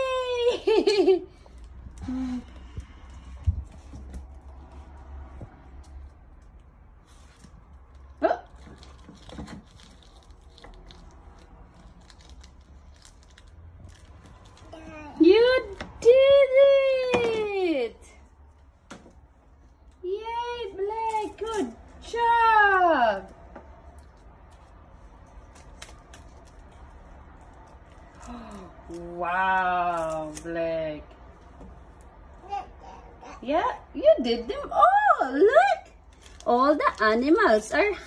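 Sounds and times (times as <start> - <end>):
low room hum: 0.0 - 38.0
paper tape crinkling: 5.8 - 15.0, 23.8 - 30.6, 36.0 - 37.7
toddler vocal sound: 14.6 - 15.2, 32.4 - 33.6.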